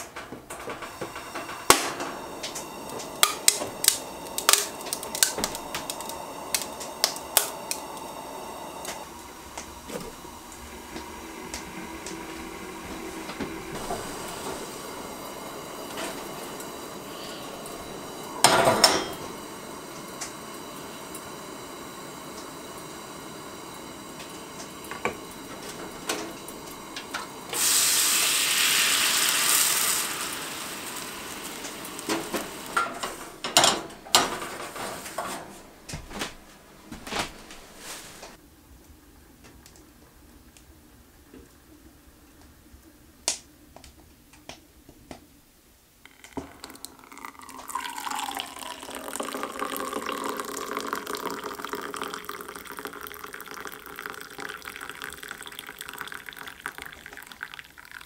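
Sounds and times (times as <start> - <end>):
camp stove burner hissing: 0.0 - 38.4, 46.1 - 58.0
cookware clinking on metal grate: 18.4 - 19.3, 32.8 - 35.4.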